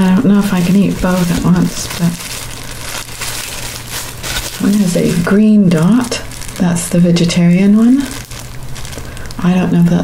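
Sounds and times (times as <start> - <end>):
plastic gloves crinkling: 0.0 - 10.0.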